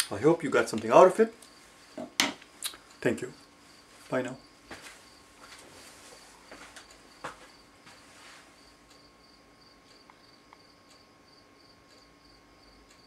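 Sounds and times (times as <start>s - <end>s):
rustling of person moving: 3.5s - 8.8s.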